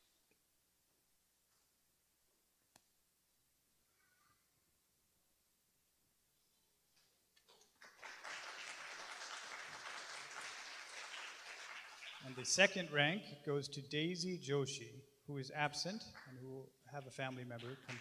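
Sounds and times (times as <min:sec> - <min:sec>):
audience applauding: 0:07.6 - 0:12.8, 0:17.5 - 0:18.0.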